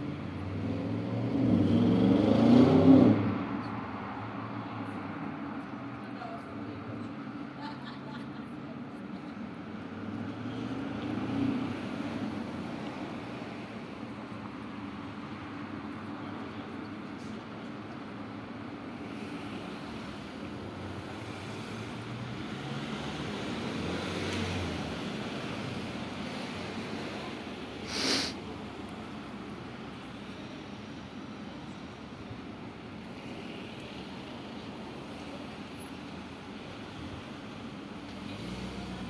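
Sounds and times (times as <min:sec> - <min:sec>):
road traffic rumbling hum: 0:00.0 - 0:39.0.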